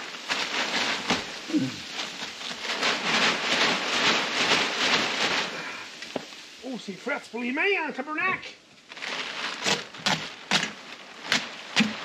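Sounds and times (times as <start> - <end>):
plastic tarp rustling and crinkling: 0.0 - 12.0.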